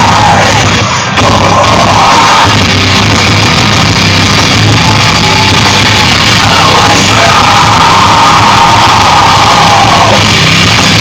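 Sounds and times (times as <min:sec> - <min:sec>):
live rock band playing loud: 0:00.0 - 0:11.0.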